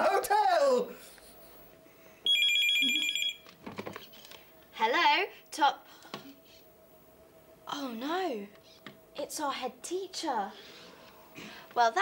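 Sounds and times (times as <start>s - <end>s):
telephone ringing: 2.3s - 3.5s.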